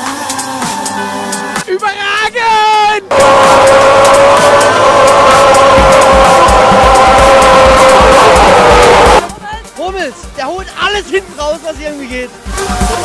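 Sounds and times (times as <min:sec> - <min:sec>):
engine running: 0:03.1 - 0:09.3
fast thumping bass music: 0:03.1 - 0:13.0.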